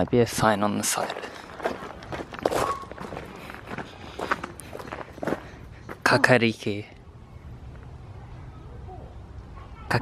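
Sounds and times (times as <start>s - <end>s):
footsteps on a path: 0.4s - 6.2s.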